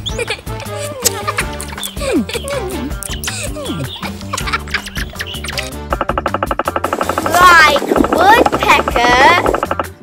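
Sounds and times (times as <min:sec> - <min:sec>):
wavering bird calls: 0:00.0 - 0:00.5, 0:01.6 - 0:06.3
background music: 0:00.0 - 0:10.0
woodpecker drumming: 0:01.3 - 0:10.0.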